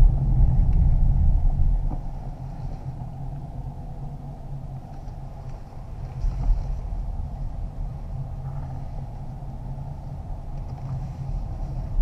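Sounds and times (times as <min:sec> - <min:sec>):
car driving heard from inside: 0:00.0 - 0:12.0.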